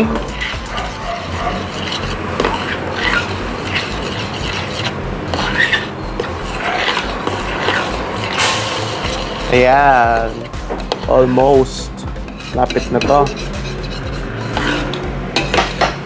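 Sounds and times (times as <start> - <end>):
steady low hum: 0.0 - 12.5
metal spoon scraping a pot: 0.0 - 16.0.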